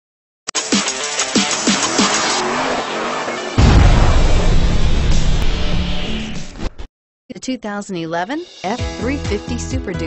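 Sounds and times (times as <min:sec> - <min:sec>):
loud deep bass hit: 0:03.6 - 0:06.8.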